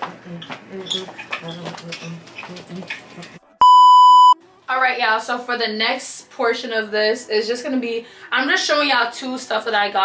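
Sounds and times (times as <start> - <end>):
high steady test-tone beep: 3.6 - 4.4.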